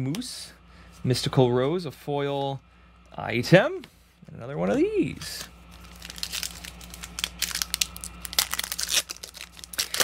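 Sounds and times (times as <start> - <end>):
foil wrapper crinkling: 5.3 - 10.0.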